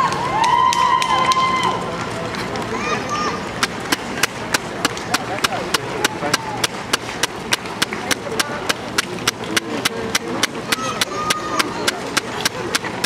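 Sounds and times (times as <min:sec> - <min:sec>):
crowd noise: 0:00.0 - 0:13.0
rhythmic hand-clapping: 0:00.0 - 0:13.0.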